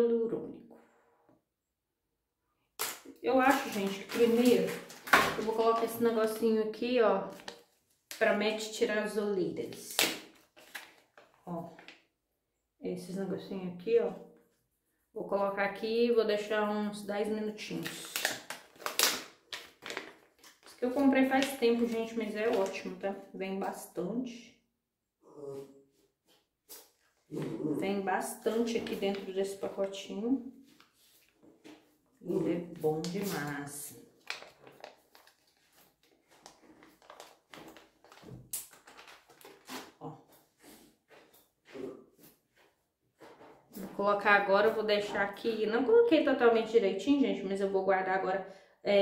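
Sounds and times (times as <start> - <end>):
plastic packet crinkling: 2.8 - 6.5, 7.2 - 8.4, 9.7 - 12.0, 17.8 - 23.0, 33.0 - 39.9.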